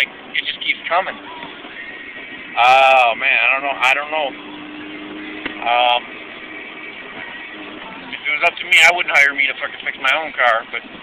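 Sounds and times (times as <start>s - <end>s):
car cabin engine and road hum: 0.0s - 11.0s.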